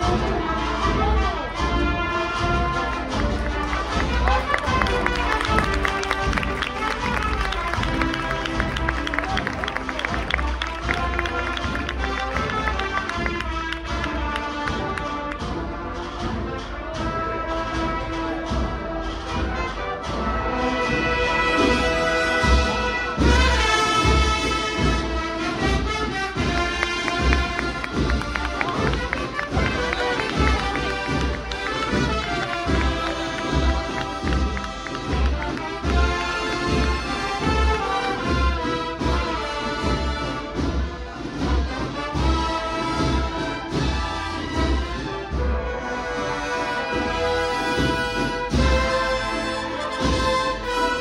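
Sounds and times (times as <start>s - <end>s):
snare and bass drum beat: 0.0s - 19.6s, 20.8s - 45.8s, 46.8s - 51.0s
brass sustained chords: 0.0s - 51.0s.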